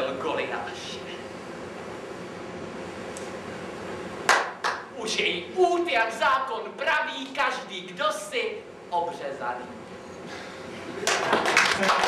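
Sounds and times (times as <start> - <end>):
low room hiss: 0.0 - 12.0
hand claps: 4.3 - 4.9, 11.0 - 12.0.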